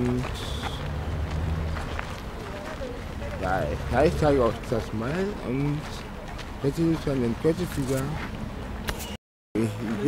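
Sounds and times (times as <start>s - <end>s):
faint voices of people: 2.3s - 3.8s.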